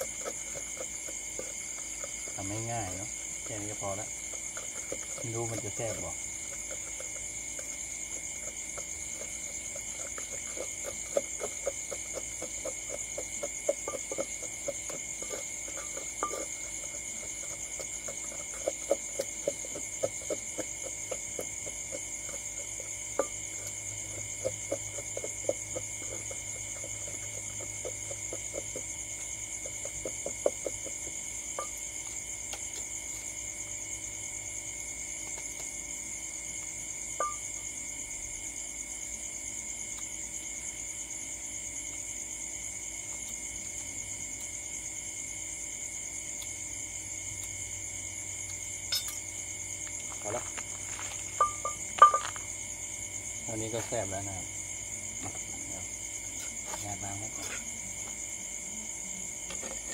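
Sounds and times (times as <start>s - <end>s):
wooden pestle pounding in mortar: 0.0s - 33.4s
night insects chirring: 0.0s - 59.9s.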